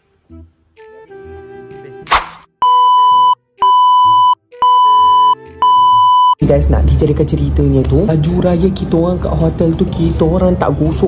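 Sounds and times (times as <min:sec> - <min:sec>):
high pure beeps: 0:02.6 - 0:06.4.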